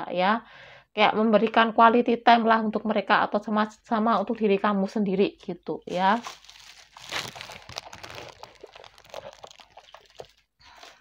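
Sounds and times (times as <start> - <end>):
crinkling and rustling by hands: 5.8 - 11.0.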